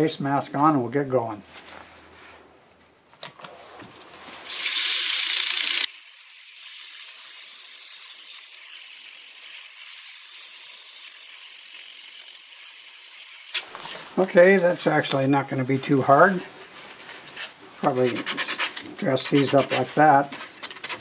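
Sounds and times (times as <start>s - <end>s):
sandpaper hissing on spinning wood: 4.4s - 6.2s, 18.0s - 20.3s.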